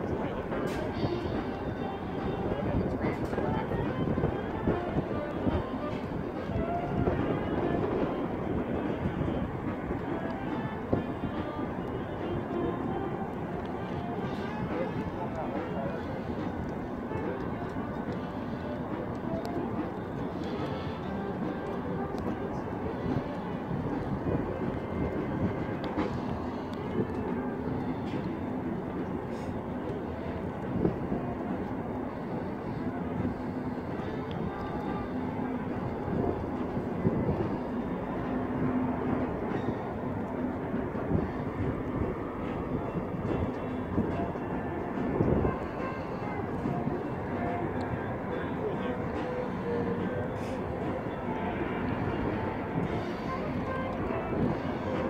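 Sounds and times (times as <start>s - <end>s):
continuous rushing noise: 0.0s - 55.0s
distant train engine drone: 0.0s - 55.0s.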